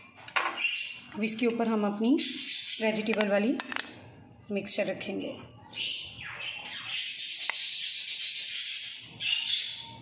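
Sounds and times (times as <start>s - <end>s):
parrots screeching: 5.7s - 10.0s.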